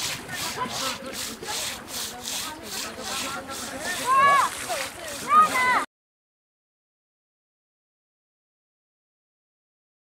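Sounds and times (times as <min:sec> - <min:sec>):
scrubbing wet hide: 0:00.0 - 0:05.9.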